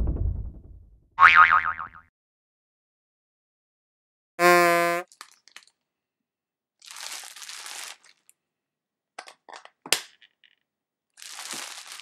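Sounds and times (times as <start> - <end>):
higher wobbling boing: 1.2 - 2.0
low cartoon boing: 1.2 - 2.1.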